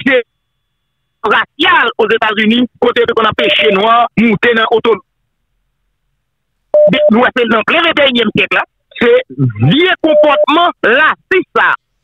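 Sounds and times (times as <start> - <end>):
man talking: 1.2 - 5.0, 6.8 - 11.8.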